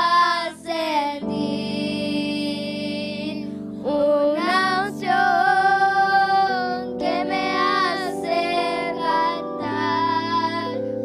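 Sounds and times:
children singing worship song: 0.0s - 11.0s
sustained instrumental chords: 1.2s - 11.0s.

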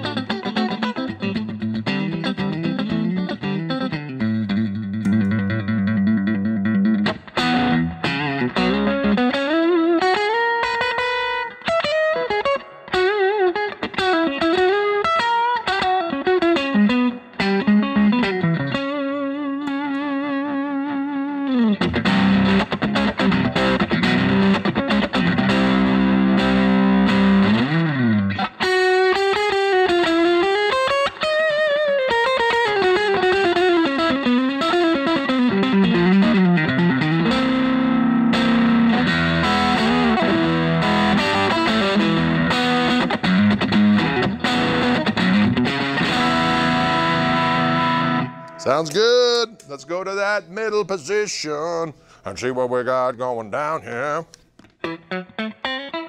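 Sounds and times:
electric guitar lead with bends: 0.0s - 50.8s, 54.8s - 56.0s.

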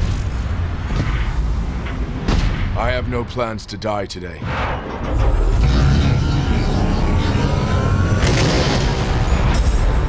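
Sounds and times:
trailer music: 4.4s - 10.0s.

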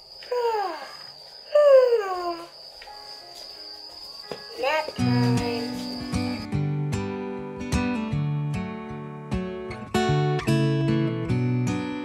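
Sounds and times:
faint high tone: 0.2s - 6.5s
guitar music: 2.8s - 12.0s
person singing: 4.6s - 6.4s.

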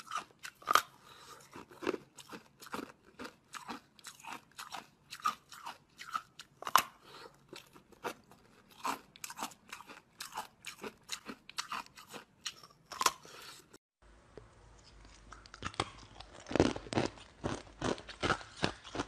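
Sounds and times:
ice being chewed crunching: 0.0s - 13.8s, 14.8s - 19.0s.

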